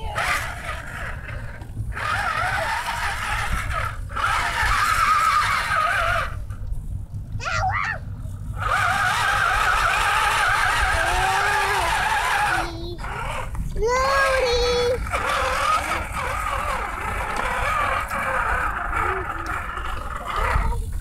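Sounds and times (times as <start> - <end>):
electric motor whining: 0.0 - 6.7, 8.5 - 21.0.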